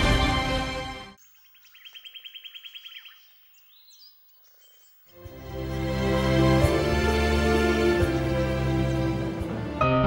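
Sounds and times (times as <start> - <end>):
small bird trilling: 1.2 - 5.1
high bird chirps: 1.2 - 5.6.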